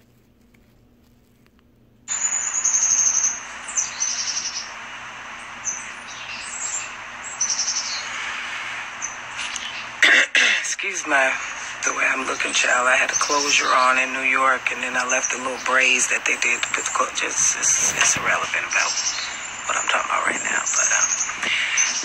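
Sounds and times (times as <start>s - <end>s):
outdoor background hiss: 0.0s - 22.0s
birds chirping: 2.1s - 22.0s.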